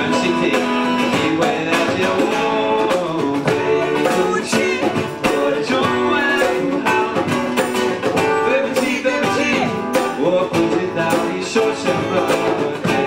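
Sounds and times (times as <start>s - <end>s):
person singing: 0.0s - 13.0s
strummed acoustic guitar: 0.0s - 13.0s.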